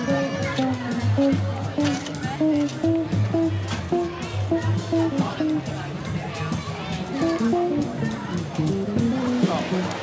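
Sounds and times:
low bass: 0:00.0 - 0:10.0
plucked guitar notes: 0:00.0 - 0:10.0.

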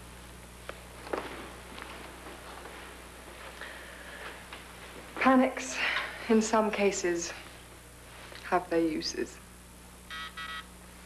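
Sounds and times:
low hum and hiss: 0:00.0 - 0:11.0.

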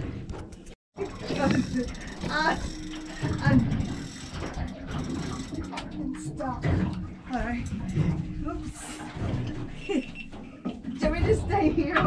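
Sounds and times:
fishing reel clicking and whirring: 0:01.0 - 0:06.0.

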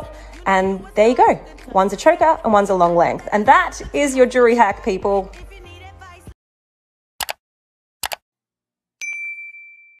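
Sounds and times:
double mouse click: 0:07.2 - 0:07.4
notification bell ding: 0:09.0 - 0:10.0.

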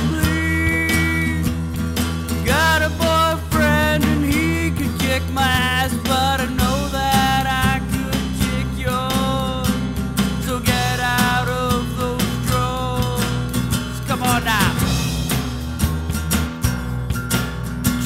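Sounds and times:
guitar bending held notes: 0:00.0 - 0:18.0
rock band playing: 0:00.0 - 0:18.0.

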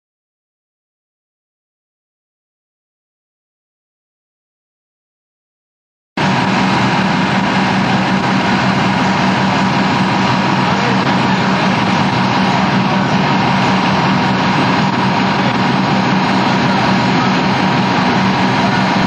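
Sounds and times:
diesel engine rumbling: 0:06.2 - 0:19.0
thin steady whine: 0:06.2 - 0:19.0.

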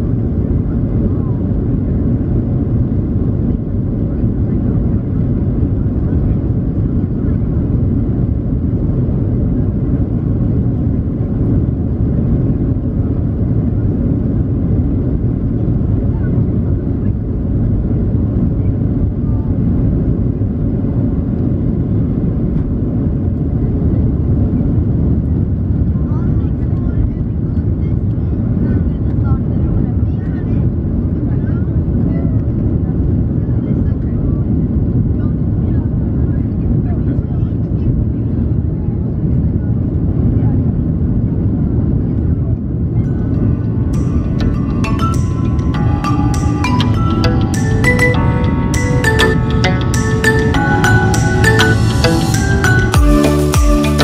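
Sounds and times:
airliner cabin engine rumble: 0:00.0 - 0:53.0.

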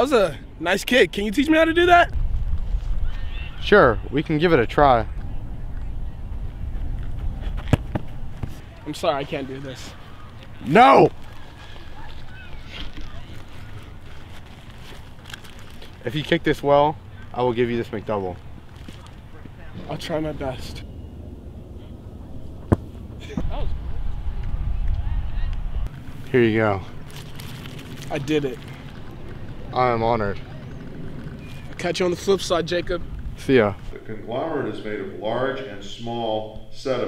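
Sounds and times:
football kick thud: 0:07.6 - 0:08.6, 0:22.6 - 0:23.6
low rumble: 0:20.2 - 0:33.5.

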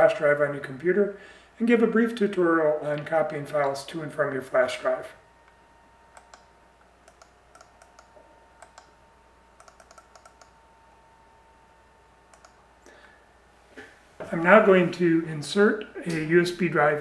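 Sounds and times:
faint steady whine: 0:00.0 - 0:17.0
low steady hum: 0:00.0 - 0:17.0
faint irregular clicks: 0:05.4 - 0:09.0, 0:09.6 - 0:10.6, 0:12.3 - 0:13.0.

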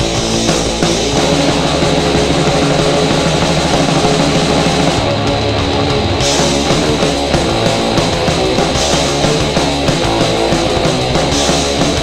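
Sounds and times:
punk band playing: 0:00.0 - 0:12.0.

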